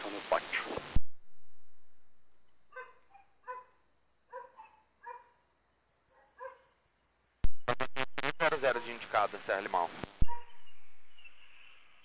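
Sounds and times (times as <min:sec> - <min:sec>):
radio transmission click: 0:07.5 - 0:10.4.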